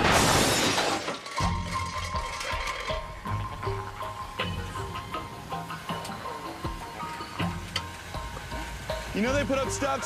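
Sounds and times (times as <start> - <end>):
car crash with glass shattering: 0.0 - 3.2
music: 1.0 - 10.0.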